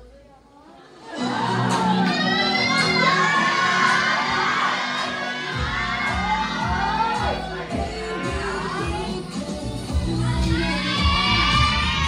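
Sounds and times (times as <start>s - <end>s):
loud dance music: 0.9s - 12.0s
audience shouting and cheering: 1.0s - 12.0s
heavy bass beat: 5.6s - 12.0s.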